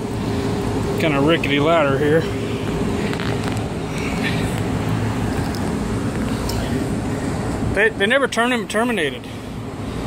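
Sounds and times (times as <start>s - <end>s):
air conditioning units humming: 0.0s - 10.0s.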